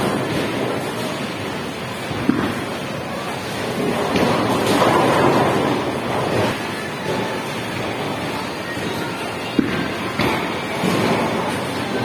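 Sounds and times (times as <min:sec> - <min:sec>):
bowling ball rolling: 0:00.0 - 0:11.8
bowling alley rumble: 0:00.0 - 0:12.0.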